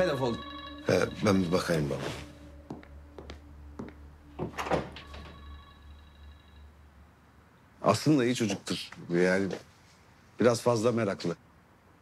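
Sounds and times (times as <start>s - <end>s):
door shutting thunk: 4.4s - 5.4s.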